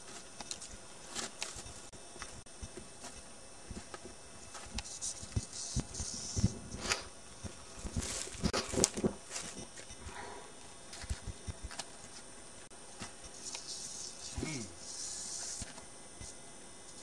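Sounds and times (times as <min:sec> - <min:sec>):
rustling over dry leaf litter: 0:07.7 - 0:09.6
short hissy bursts: 0:13.3 - 0:15.8.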